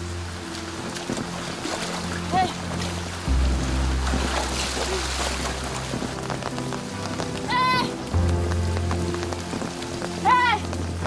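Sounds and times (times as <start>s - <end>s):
background music with low notes: 0.0s - 11.0s
steady rain: 0.0s - 11.0s.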